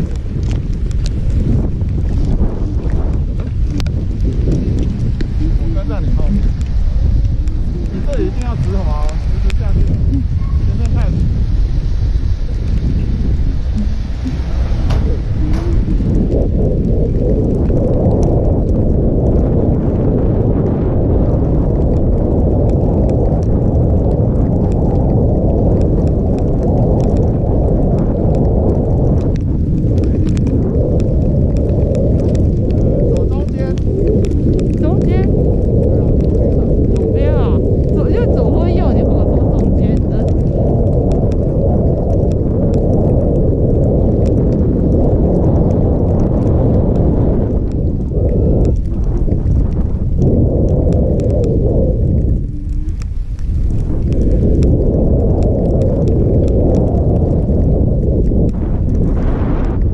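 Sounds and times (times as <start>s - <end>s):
loud wind rushing over microphone: 0.0s - 59.9s.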